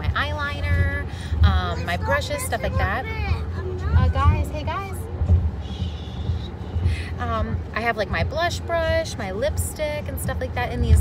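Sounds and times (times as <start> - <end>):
low car cabin rumble: 0.0 - 11.0.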